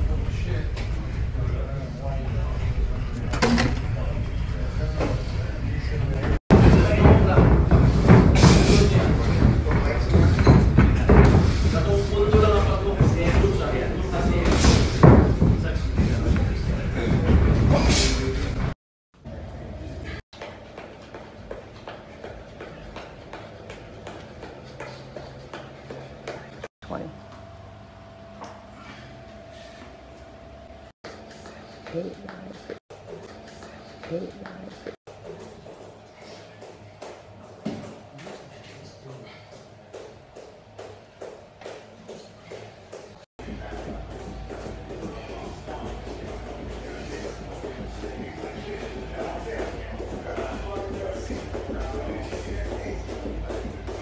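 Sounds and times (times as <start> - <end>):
loud busy gym noise: 0.0 - 26.7, 28.4 - 54.0
steady low hum: 0.0 - 54.0
voices in room: 43.4 - 54.0.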